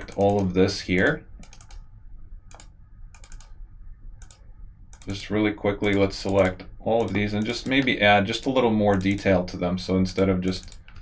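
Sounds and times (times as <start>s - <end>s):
keyboard and mouse clicking: 0.0s - 0.5s, 1.4s - 1.8s, 2.5s - 3.6s, 4.2s - 5.2s, 5.8s - 9.4s, 10.2s - 11.0s.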